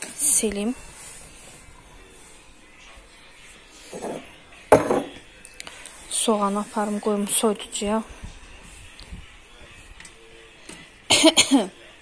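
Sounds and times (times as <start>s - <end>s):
cloth wiping countertop: 0.2s - 4.4s, 5.8s - 10.0s.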